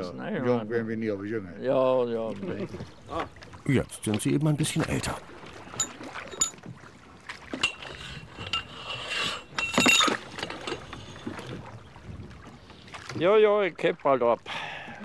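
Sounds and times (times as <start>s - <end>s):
metallic clinks: 5.7s - 6.6s, 7.6s - 11.3s
thin high squeal: 7.6s - 11.3s.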